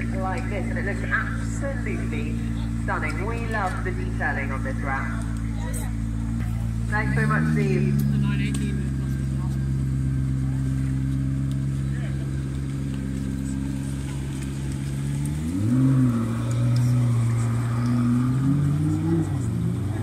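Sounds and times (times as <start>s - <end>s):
car engine idling and revving: 0.0s - 20.0s.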